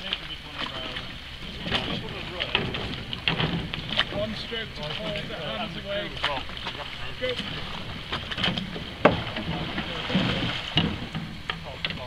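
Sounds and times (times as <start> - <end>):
oars knocking in gates: 1.5 - 5.3, 6.2 - 12.0
wind on microphone: 6.4 - 12.0.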